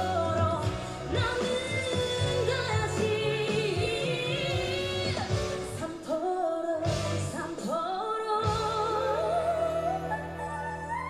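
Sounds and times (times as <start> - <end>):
band accompaniment: 0.0 - 6.0, 6.8 - 7.6
female vocal group singing: 0.0 - 11.0.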